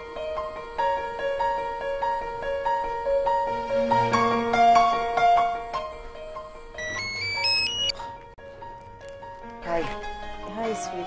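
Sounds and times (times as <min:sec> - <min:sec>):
soft piano music: 0:00.0 - 0:11.0
phone ringtone: 0:06.8 - 0:08.0.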